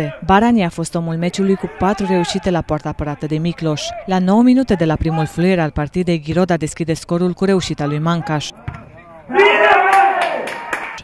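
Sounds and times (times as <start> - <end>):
crowd shouting and cheering: 1.2 - 5.5, 7.9 - 11.0.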